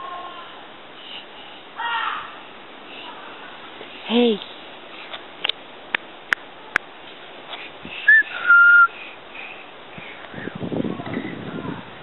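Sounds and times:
person whistling two notes: 0:08.1 - 0:08.9.

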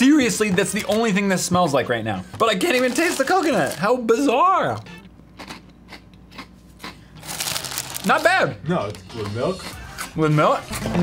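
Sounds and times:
cereal crunching while chewed: 0:05.4 - 0:08.3.

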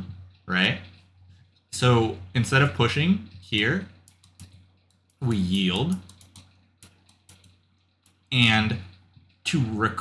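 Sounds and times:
computer input device clicks: 0:03.9 - 0:08.3.

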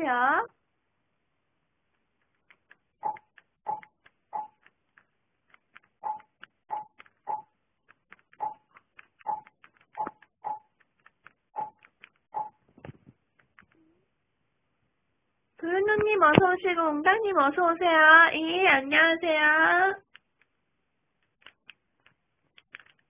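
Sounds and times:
remote buttons being pressed: 0:02.2 - 0:13.8.

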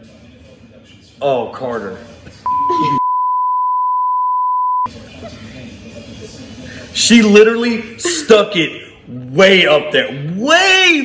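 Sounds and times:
high censor bleep: 0:02.5 - 0:04.9.

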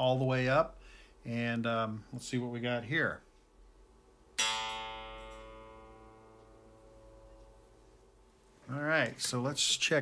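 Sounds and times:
electric guitar low note ringing: 0:04.4 - 0:07.8.

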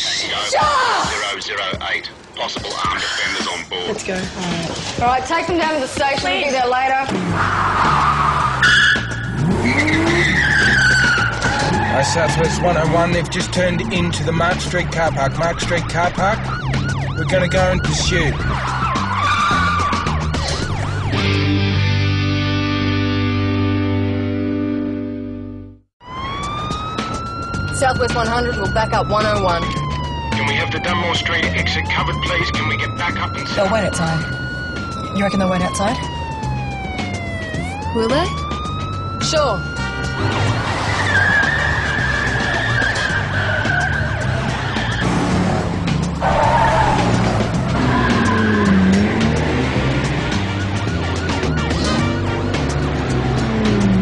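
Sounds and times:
car tyres squealing: 0:07.1 - 0:17.0, 0:18.3 - 0:21.0, 0:39.8 - 0:54.0
car engine: 0:07.1 - 0:54.0
distorted electric guitar chord: 0:21.2 - 0:25.8.

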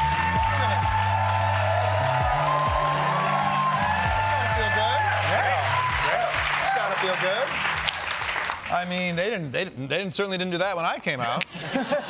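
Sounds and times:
audience applauding: 0:00.0 - 0:09.0.

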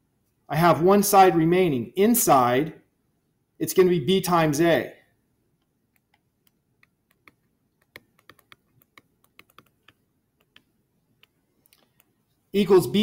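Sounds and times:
stylus tapping tablet screen: 0:05.5 - 0:12.3.

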